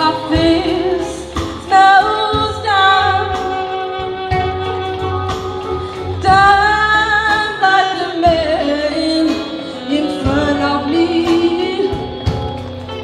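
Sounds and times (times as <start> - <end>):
woman singing: 0.0 - 5.0, 5.6 - 12.8
drums: 0.0 - 13.0
saxophones: 0.0 - 13.0.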